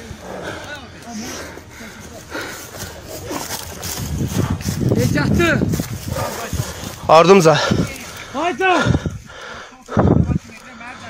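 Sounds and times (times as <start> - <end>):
low men's voices: 0.0 - 11.0
rustle of movement: 0.0 - 11.0.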